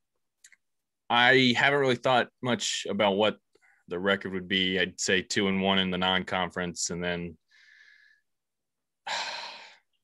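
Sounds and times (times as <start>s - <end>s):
man sighing: 9.0s - 10.0s.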